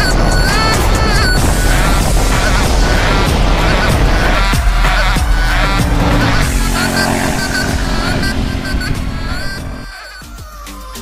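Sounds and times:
electronic music: 0.0s - 10.8s
motorcycle engine running: 1.3s - 10.1s.

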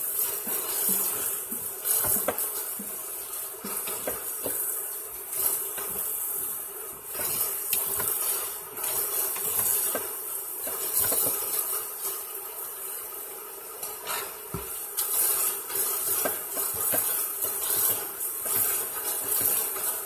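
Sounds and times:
tap water running into sink: 0.4s - 8.2s.

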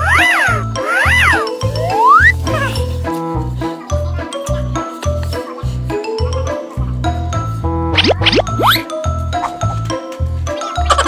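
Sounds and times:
comedic music with bass beat: 0.0s - 11.0s
rising glide effect: 7.9s - 8.9s.

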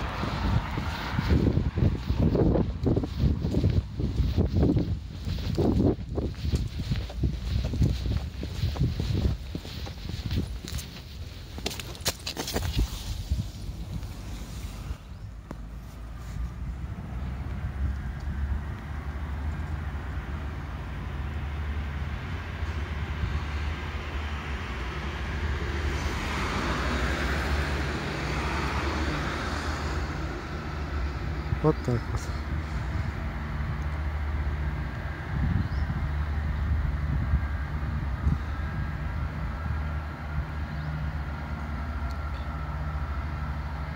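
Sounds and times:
footsteps: 0.0s - 16.7s
steady low rumble: 0.0s - 26.2s.

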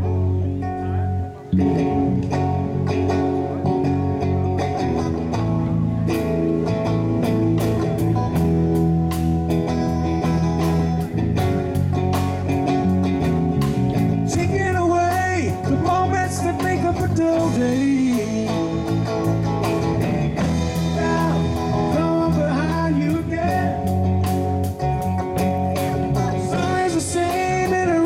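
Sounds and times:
live rock band playing: 0.0s - 28.0s.

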